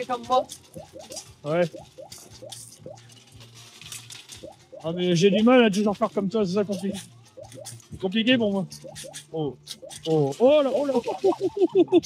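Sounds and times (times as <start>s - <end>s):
coins clinking: 0.0s - 8.0s
faint fairground music: 0.0s - 12.0s.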